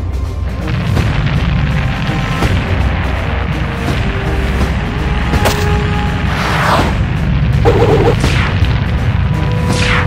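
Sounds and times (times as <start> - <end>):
dramatic action music: 0.0 - 10.0
cartoon crash rumble with crackles: 7.6 - 8.7.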